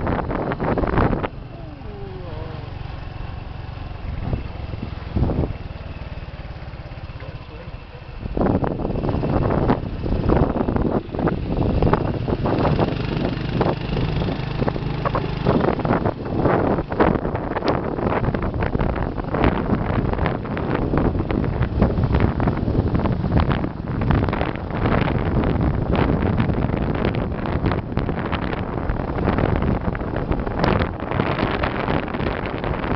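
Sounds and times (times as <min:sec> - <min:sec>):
motorbike engine running: 0:00.0 - 0:32.9
wind buffeting microphone: 0:00.0 - 0:32.9.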